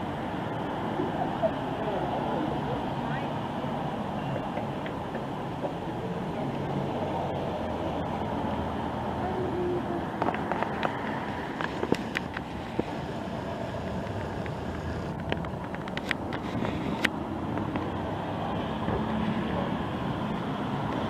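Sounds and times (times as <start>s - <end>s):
murmur: 0.0s - 21.0s.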